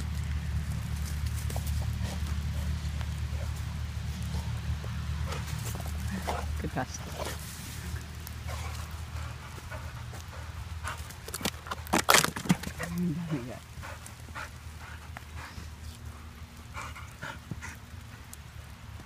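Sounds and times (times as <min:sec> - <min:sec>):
steady low hum: 0:00.0 - 0:11.8.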